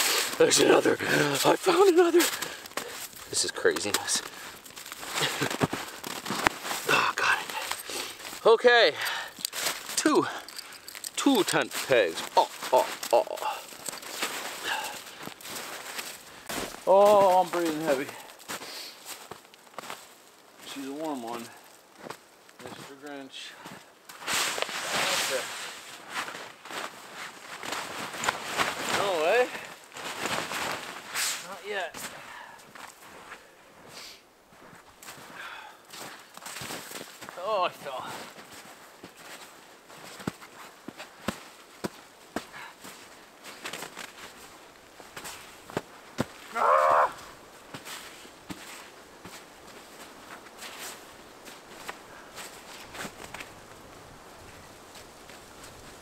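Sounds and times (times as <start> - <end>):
footsteps crunching in snow: 0.0 - 8.5, 9.1 - 56.0
shovel scraping snow: 24.2 - 26.0, 30.5 - 31.5.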